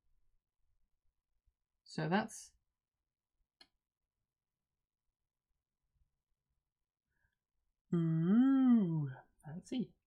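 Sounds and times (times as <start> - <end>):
faint click: 3.6 - 3.8.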